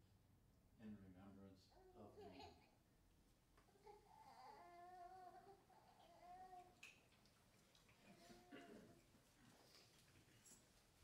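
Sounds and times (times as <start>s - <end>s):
faint high-pitched voice: 8.1s - 9.0s.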